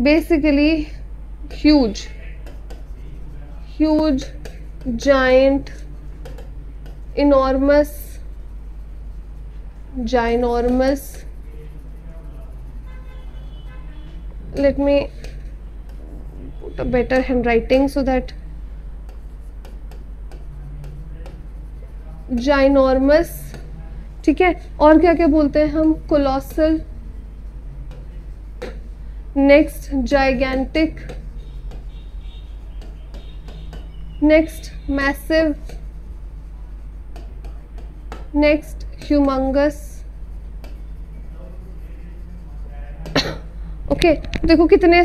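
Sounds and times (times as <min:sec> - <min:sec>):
low steady hum: 0:00.0 - 0:45.0
person coughing: 0:43.1 - 0:43.6.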